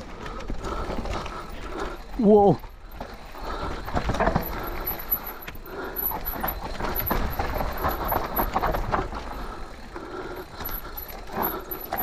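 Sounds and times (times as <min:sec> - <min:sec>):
tyre noise on dirt trail: 0:00.0 - 0:12.0
bike knocking and clattering: 0:02.6 - 0:12.0.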